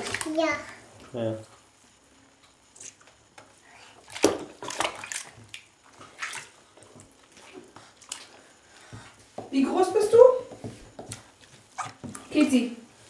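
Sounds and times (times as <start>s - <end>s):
bath water splashing: 3.8s - 12.6s.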